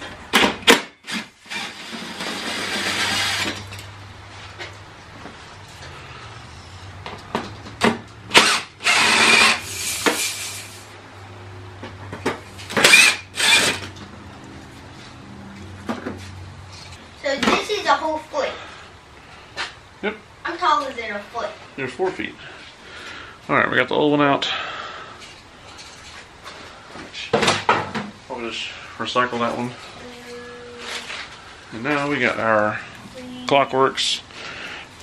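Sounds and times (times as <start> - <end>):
cordless drill spurts: 1.1 - 3.7, 8.3 - 10.8, 12.8 - 13.9.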